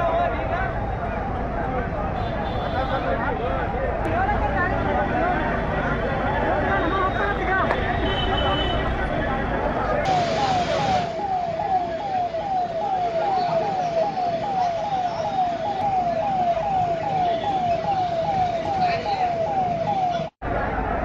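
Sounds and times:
street noise: 0.0s - 21.0s
siren rapid falling sweep: 10.1s - 20.3s.

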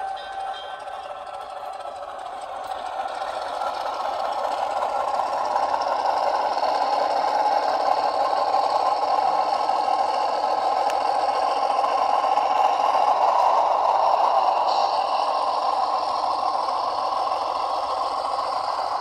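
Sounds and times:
model locomotive engine sound: 0.0s - 19.0s.

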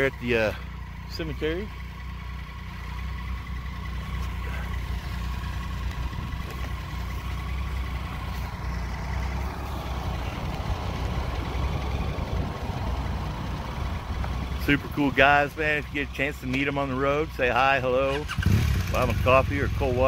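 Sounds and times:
motorcycle engine idling: 0.0s - 20.0s.

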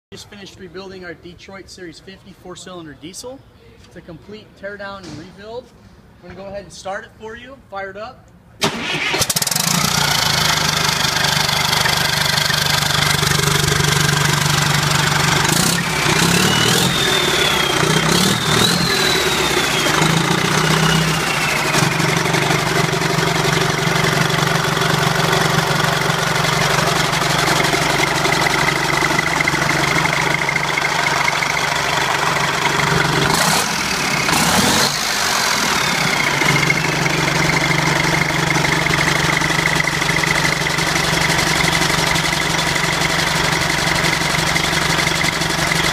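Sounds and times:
diesel engine running: 8.6s - 45.9s.

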